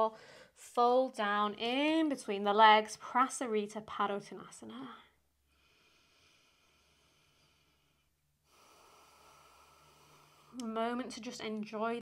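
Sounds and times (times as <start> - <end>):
faint breathing: 0.2 - 0.6, 5.4 - 10.6.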